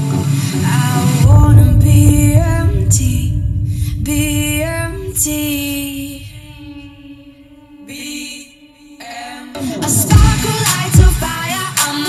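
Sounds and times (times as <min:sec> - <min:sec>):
heavy bass line: 0:01.2 - 0:07.2.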